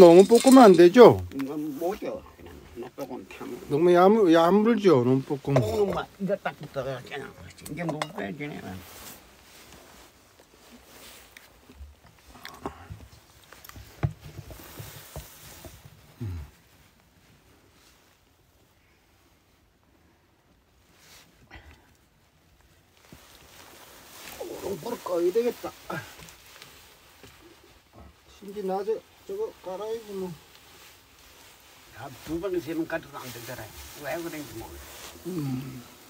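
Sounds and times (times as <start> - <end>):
light clicks and clinks: 0.0 - 1.5
person speaking: 0.0 - 8.9, 31.9 - 36.0
person speaking indistinctly: 31.9 - 36.0.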